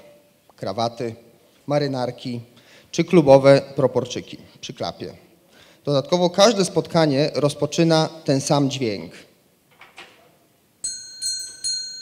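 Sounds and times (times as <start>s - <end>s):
small bell ringing: 10.8s - 12.0s.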